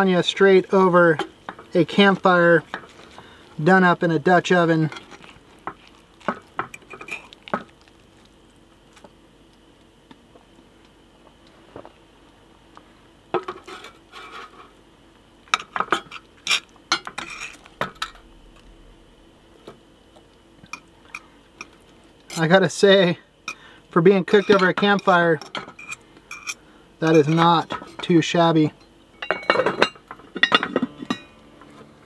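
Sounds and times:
utensils scraping cast iron pot: 15.9 - 18.3.

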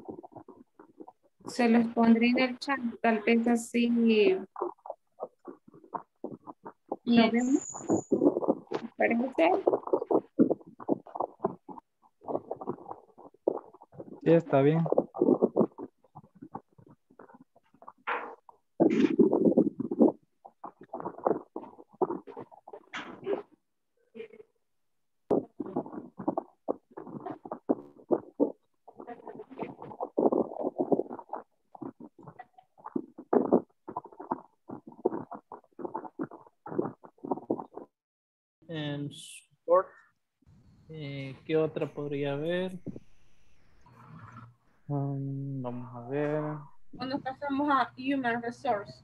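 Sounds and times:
garbled voice over video call: 0.0 - 23.5, 25.3 - 37.9, 38.6 - 40.2, 40.9 - 49.0.

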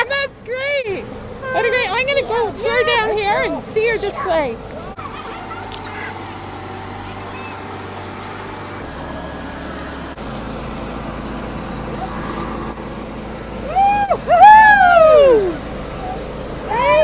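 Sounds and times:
car engine and road rumble: 0.0 - 17.0
faint distant voices: 0.9 - 9.5.

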